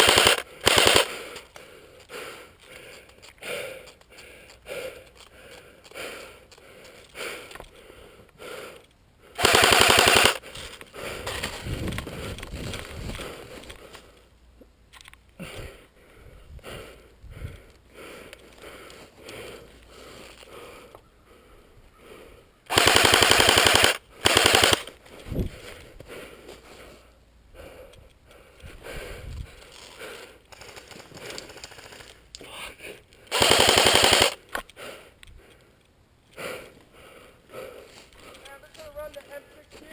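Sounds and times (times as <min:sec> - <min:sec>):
airsoft rifle full-auto burst: 0:00.0 - 0:01.3, 0:09.4 - 0:10.4, 0:22.7 - 0:25.0, 0:30.6 - 0:32.2, 0:33.3 - 0:34.4.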